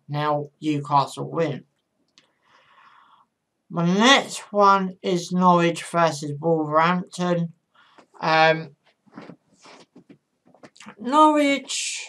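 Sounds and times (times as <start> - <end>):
man speaking: 8.2 - 10.0, 10.8 - 12.0.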